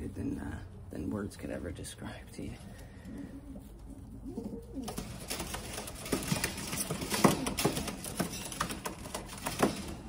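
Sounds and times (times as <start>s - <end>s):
pigeons cooing: 2.6s - 9.2s
sharp rustles and clicks: 4.7s - 10.0s.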